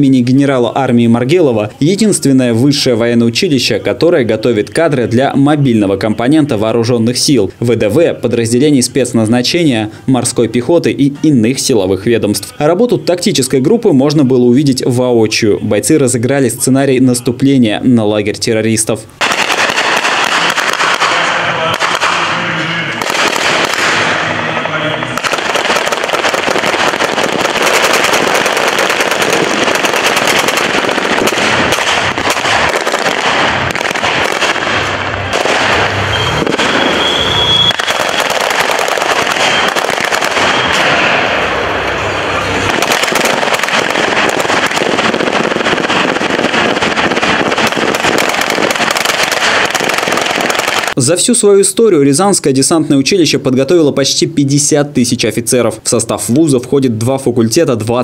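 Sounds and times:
automatic rifle fire: 0:19.2 - 0:22.4, 0:23.0 - 0:24.4, 0:25.2 - 0:41.1, 0:42.7 - 0:51.0
pyrotechnic charges banging: 0:19.2 - 0:51.0.

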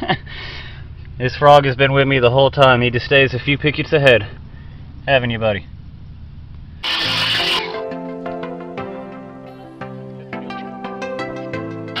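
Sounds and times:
hissing noise burst: 0:06.8 - 0:07.7
music with steady pitched notes: 0:06.8 - 0:12.0.

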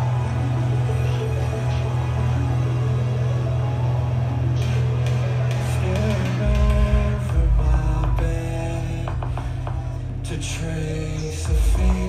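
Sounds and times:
low synthesizer drone: 0:00.0 - 0:12.0.

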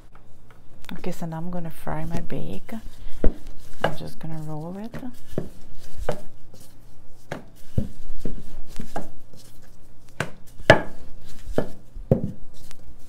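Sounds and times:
rolling pin knocking on work surface: 0:10.2 - 0:12.4.

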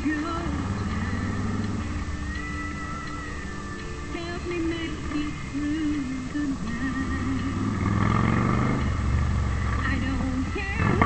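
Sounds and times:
radio music with singing: 0:00.0 - 0:08.1, 0:09.0 - 0:11.0
car engine rumble: 0:00.0 - 0:11.0.

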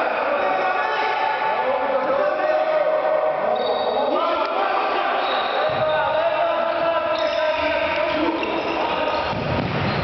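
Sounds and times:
echoing indistinct voices: 0:00.0 - 0:10.0.

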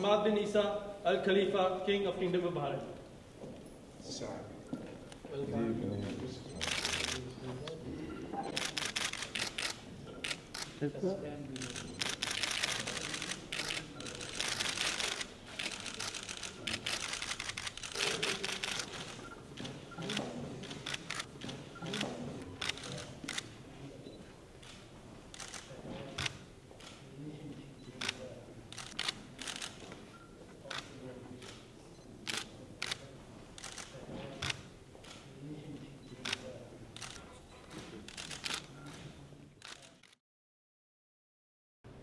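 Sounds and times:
murmured conversation: 0:00.0 - 0:40.2
camera shutters clicking rapidly: 0:06.6 - 0:07.3, 0:08.5 - 0:10.8, 0:11.6 - 0:23.5, 0:24.6 - 0:27.0, 0:28.0 - 0:30.0, 0:32.3 - 0:33.0, 0:37.0 - 0:40.2.

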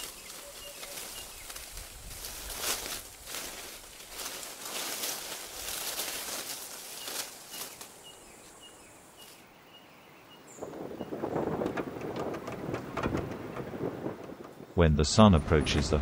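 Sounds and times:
small bird chirping: 0:06.8 - 0:11.2.

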